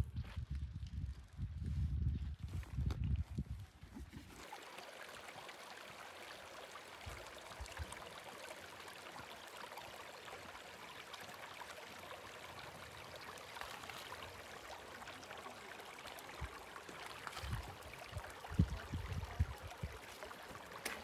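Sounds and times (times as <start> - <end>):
stream trickling over rocks: 0.4 - 21.0.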